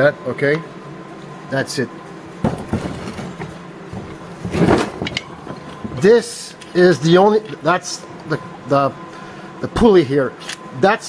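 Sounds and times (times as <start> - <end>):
scraping rustle: 2.6 - 5.9.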